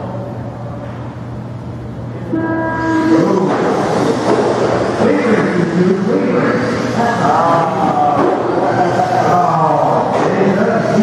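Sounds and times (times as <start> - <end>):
electronic start tone: 2.3 - 4.3.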